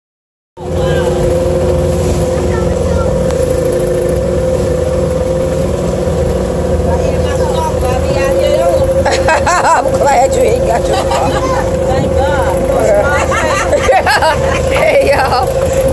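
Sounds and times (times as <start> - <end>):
boat engine droning: 0.6 - 15.9.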